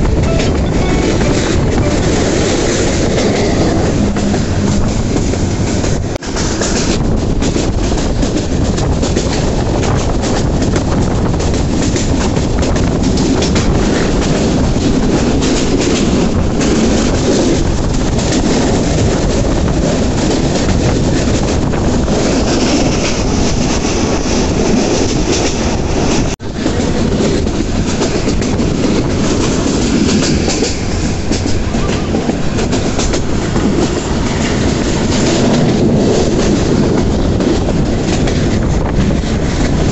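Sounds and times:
train wheels rumbling on rails: 0.0s - 39.9s.

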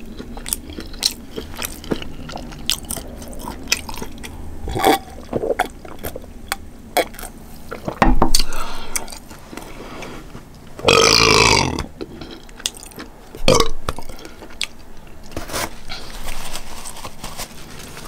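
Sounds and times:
woman burping loudly: 10.8s - 11.9s.

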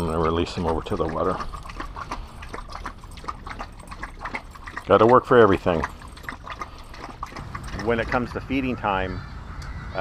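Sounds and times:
dog lapping water from metal bowl: 0.0s - 8.7s.

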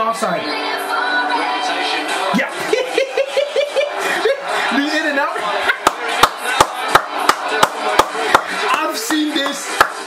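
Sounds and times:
bed of voices: 0.0s - 10.0s
sharp hand claps: 5.8s - 10.0s.

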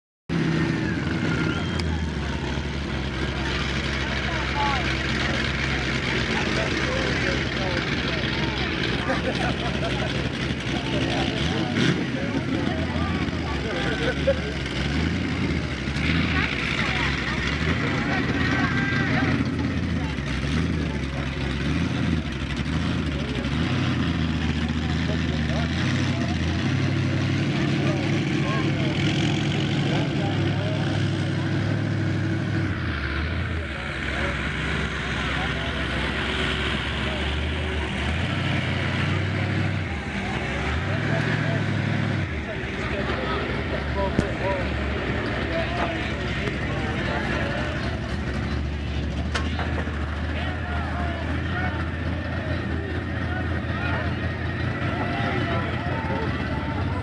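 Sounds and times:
crowd chatter: 0.3s - 57.0s
heavy vehicle engines revving: 0.3s - 57.0s.

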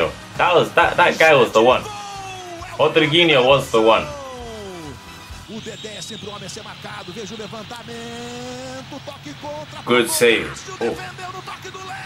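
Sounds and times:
commentator talking: 0.0s - 12.0s
stadium crowd singing: 2.2s - 12.0s.

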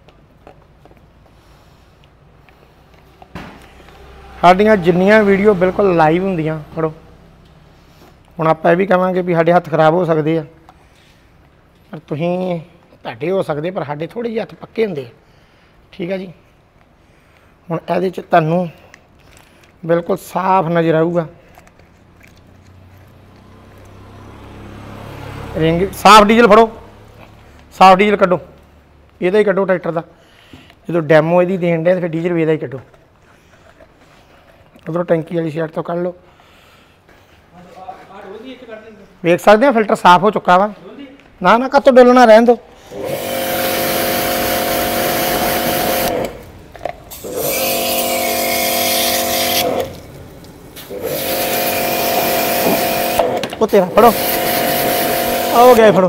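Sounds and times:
low engine rumble: 3.6s - 8.4s
pressure washer motor humming: 42.8s - 56.0s
water jet hissing: 54.1s - 55.8s.

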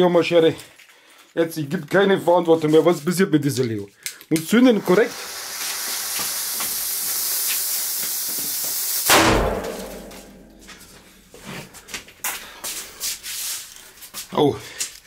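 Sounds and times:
firecracker fuse hissing: 4.5s - 9.3s
firecracker exploding bang: 9.0s - 10.6s.

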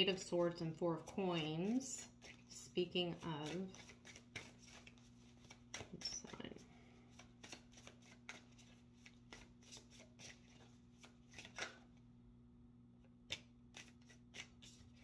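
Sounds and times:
cards being shuffled: 1.0s - 2.5s, 3.4s - 11.9s, 13.3s - 15.0s.

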